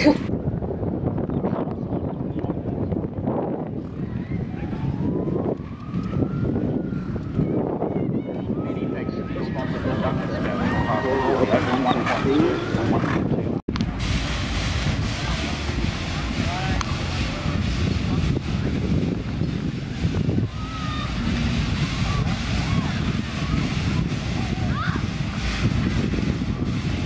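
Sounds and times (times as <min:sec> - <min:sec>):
wind buffeting microphone: 0:00.0 - 0:27.0
distant indistinct voices: 0:06.6 - 0:13.6, 0:14.8 - 0:27.0.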